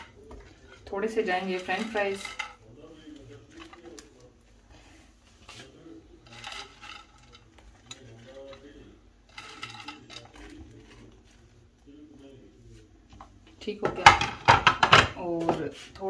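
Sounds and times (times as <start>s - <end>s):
faint background voices: 0.0s - 16.0s.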